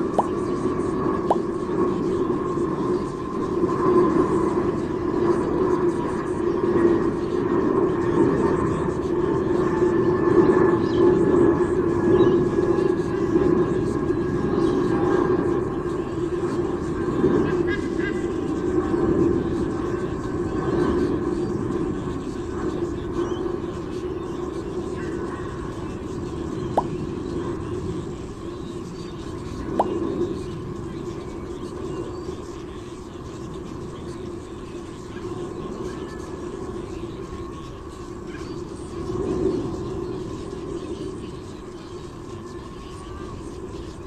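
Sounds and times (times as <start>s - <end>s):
low outdoor background hum: 0.0s - 44.0s
steady mechanical drone: 0.0s - 44.0s.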